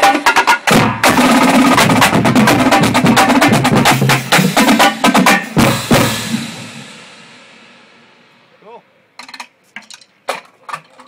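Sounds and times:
drumline hit on snares and bass drums: 0:00.0 - 0:08.0.

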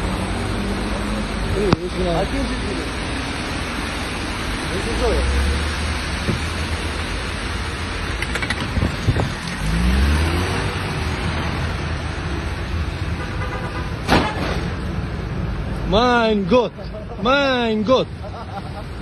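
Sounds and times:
car engine revving: 0:00.0 - 0:13.3
rain: 0:00.0 - 0:15.8
tyres hissing on wet road: 0:00.0 - 0:15.9.

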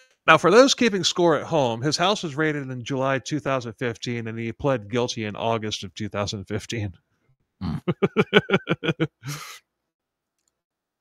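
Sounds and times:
man laughing: 0:07.6 - 0:09.6.

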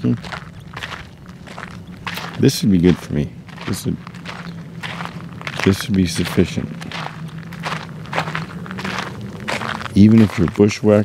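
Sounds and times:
footsteps crunching on dirt: 0:00.0 - 0:11.0.

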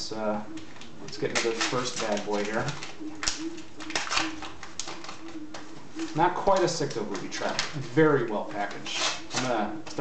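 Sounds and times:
wrapper crinkling: 0:00.7 - 0:05.4, 0:06.0 - 0:09.6.

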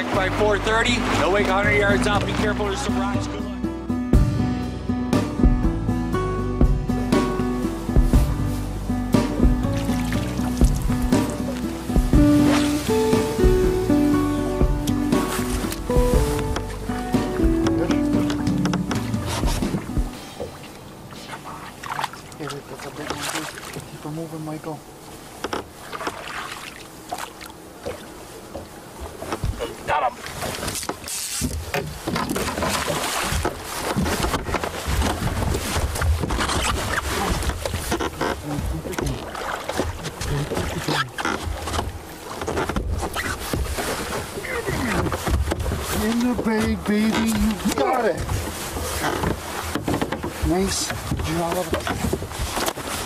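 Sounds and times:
fish thrashing and splashing: 0:09.6 - 0:13.5, 0:25.6 - 0:28.2, 0:30.2 - 0:53.0.

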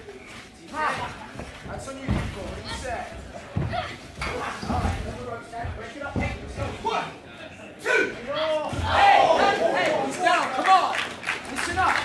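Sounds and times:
people shouting in a hall: 0:07.8 - 0:11.0.

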